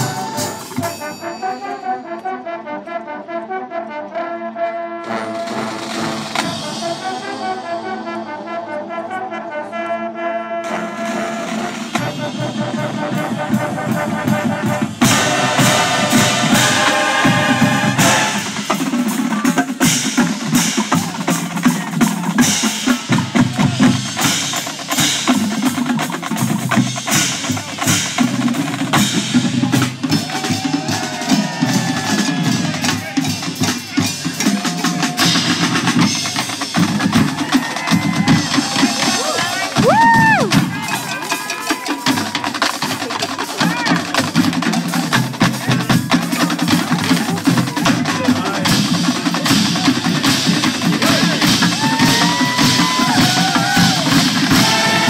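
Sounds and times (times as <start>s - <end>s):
drumline: 0.0s - 1.6s, 5.0s - 9.1s, 10.5s - 55.0s
brass: 0.0s - 39.9s, 40.5s - 55.0s.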